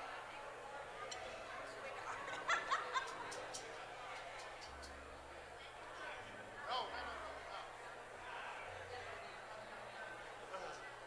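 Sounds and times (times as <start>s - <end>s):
murmur of congregation chatting: 0.0s - 11.0s.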